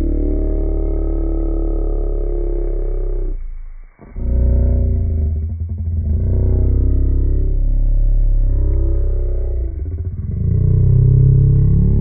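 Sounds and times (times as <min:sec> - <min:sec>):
deep rumbling drone: 0:00.0 - 0:12.0.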